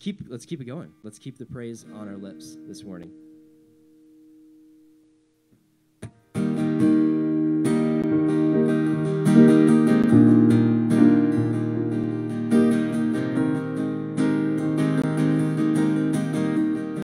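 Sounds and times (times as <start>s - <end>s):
acoustic guitar strumming: 0.9s - 17.0s
held chord: 1.6s - 5.2s, 6.4s - 17.0s.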